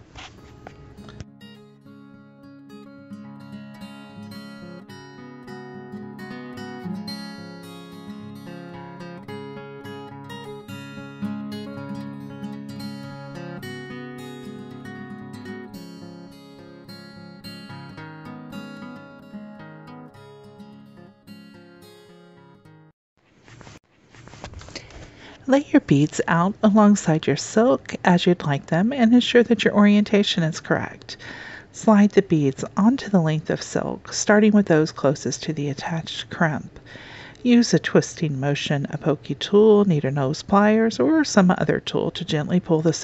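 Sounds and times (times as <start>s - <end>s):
acoustic guitar plucking: 0.0s - 22.8s.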